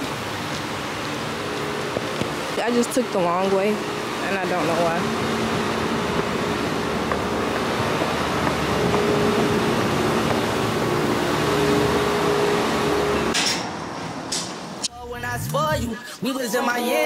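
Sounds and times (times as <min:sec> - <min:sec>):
broad rushing noise: 0:00.0 - 0:16.2
steady mechanical hum: 0:00.0 - 0:16.4.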